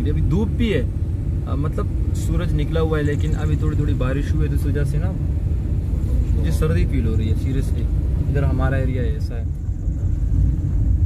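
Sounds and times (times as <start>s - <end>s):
man talking: 0.0s - 5.2s, 6.0s - 9.5s
car cabin rumble: 0.0s - 11.0s.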